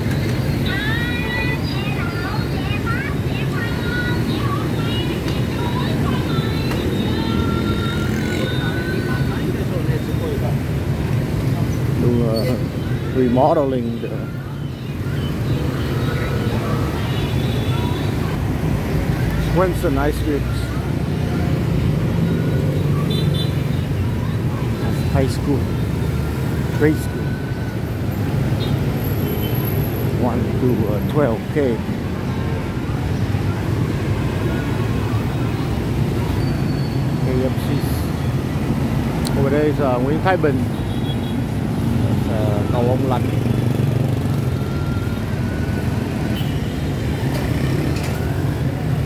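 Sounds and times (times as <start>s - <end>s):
motorbike and scooter traffic rumble: 0.0s - 49.0s
voices of passers-by: 0.0s - 49.0s.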